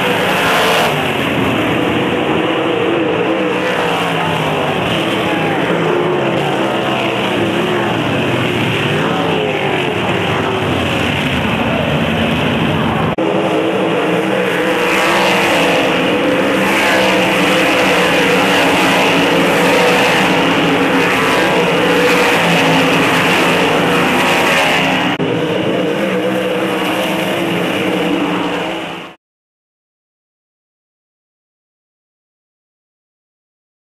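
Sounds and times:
race car engines roaring: 0.0 - 29.2.

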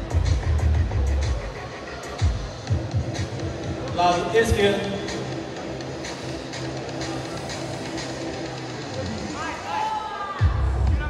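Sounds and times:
music with heavy bass beat: 0.0 - 4.0, 10.4 - 11.0.

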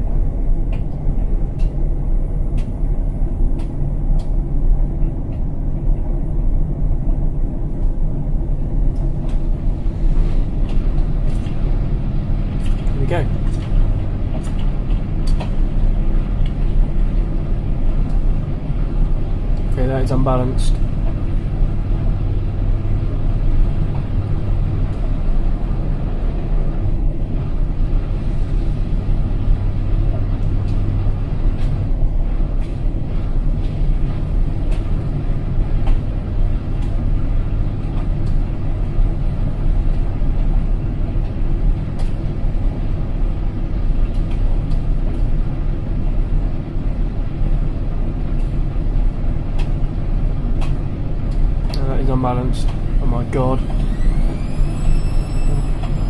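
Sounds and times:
washing machine drum spinning: 0.0 - 56.0.

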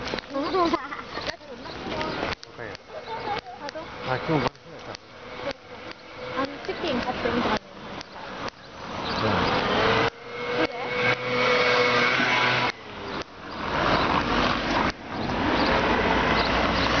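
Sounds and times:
traffic hiss on wet road: 0.0 - 17.0
vehicle whine: 0.0 - 17.0.

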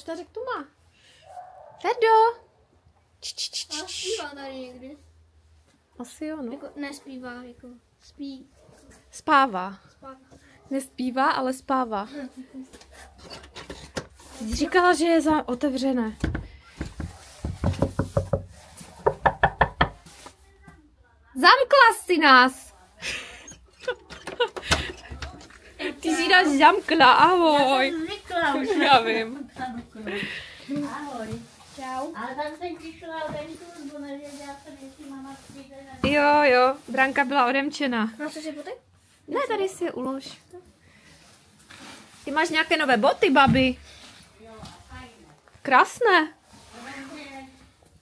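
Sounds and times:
surrounding conversation: 0.0 - 17.4, 19.0 - 47.7
woman talking: 3.3 - 4.3, 14.4 - 16.3, 21.0 - 23.5, 24.9 - 31.4, 32.0 - 40.7, 42.2 - 43.8, 44.4 - 47.5
rustling: 12.1 - 20.9, 25.1 - 47.9
footsteps on tiled steps: 12.6 - 20.8.

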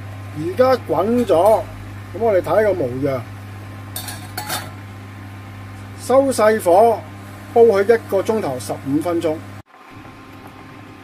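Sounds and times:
steady low hum: 0.0 - 11.0
metal cooking pot clinking: 4.0 - 4.8.

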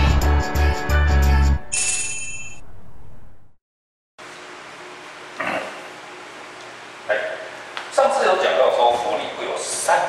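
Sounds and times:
steady room hiss: 4.2 - 10.0
man grunting or clearing throat: 5.4 - 5.8.

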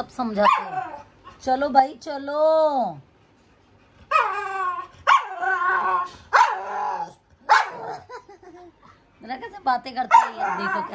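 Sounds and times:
dog barking and whining: 0.3 - 1.5, 4.0 - 8.2, 10.0 - 10.9.

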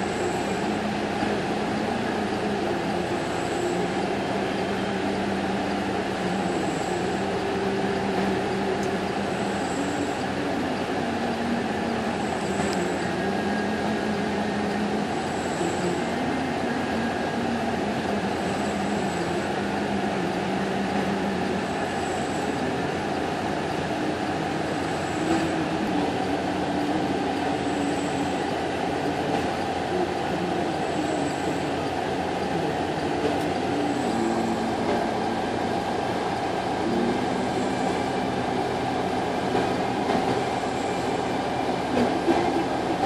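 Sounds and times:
diesel engines droning: 0.0 - 43.0.

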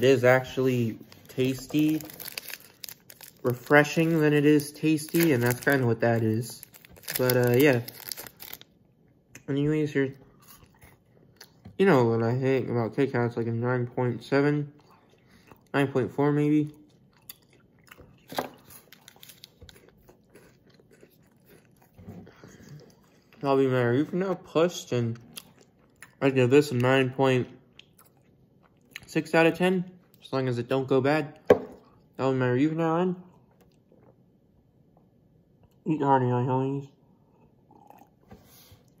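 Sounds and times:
person chewing crunchy wafer: 0.4 - 8.7, 10.3 - 11.6, 16.7 - 23.4, 25.2 - 26.2, 27.7 - 29.1
person drinking and swallowing: 37.4 - 38.3.

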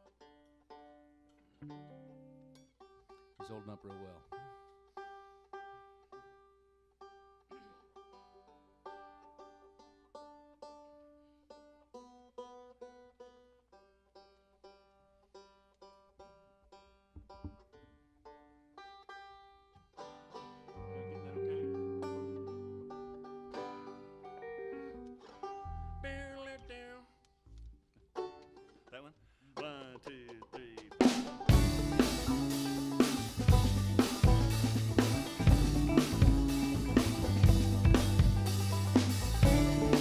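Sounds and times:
plucked string instruments: 0.0 - 26.7, 28.0 - 40.0
low bass notes: 20.8 - 25.0, 31.5 - 40.0.

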